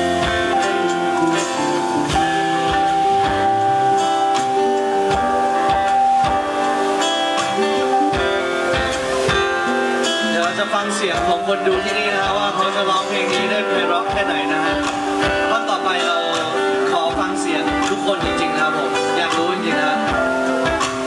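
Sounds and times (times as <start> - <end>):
live band guitar instrumental: 0.0 - 21.0.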